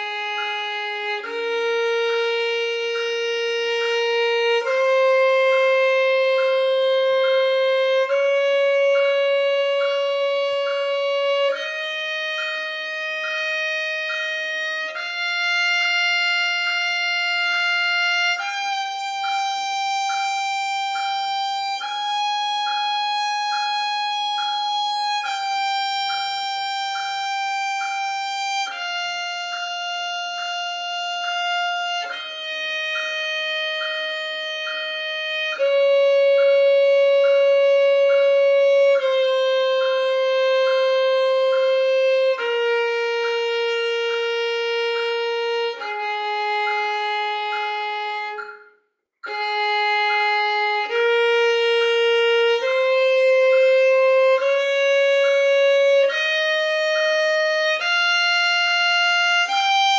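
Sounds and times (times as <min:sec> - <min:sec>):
solo violin playing long notes: 0:00.0 - 0:59.9.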